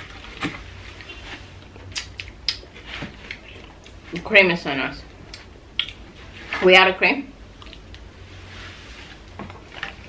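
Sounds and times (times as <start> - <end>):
soft mouth sounds: 5.3 - 6.0.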